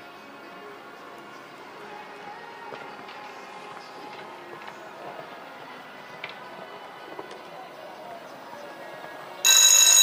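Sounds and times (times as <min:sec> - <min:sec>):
loud electronic ringing signal: 0:08.9 - 0:10.0.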